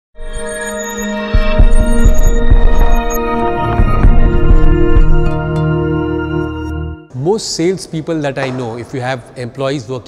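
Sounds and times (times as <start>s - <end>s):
droning intro music: 0.2s - 7.1s
deep bass thumps: 3.7s - 5.4s.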